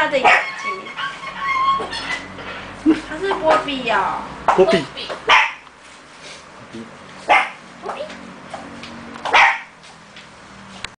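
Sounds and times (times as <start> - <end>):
dog barking: 0.2 - 1.2, 5.3 - 5.6, 7.3 - 7.6, 9.3 - 9.8.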